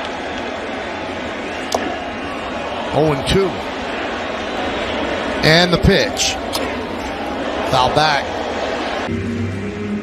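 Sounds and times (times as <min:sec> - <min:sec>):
ballpark crowd murmur: 0:00.0 - 0:09.1.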